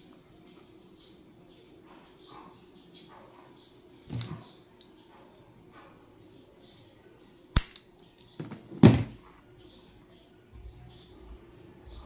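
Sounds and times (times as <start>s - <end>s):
scissors clicking: 7.6s - 7.9s.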